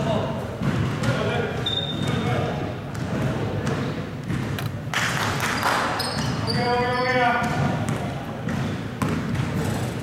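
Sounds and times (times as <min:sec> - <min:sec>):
players' voices echoing: 0:00.0 - 0:10.0
basketball bouncing on floor: 0:00.5 - 0:02.3, 0:02.9 - 0:04.7, 0:07.2 - 0:10.0.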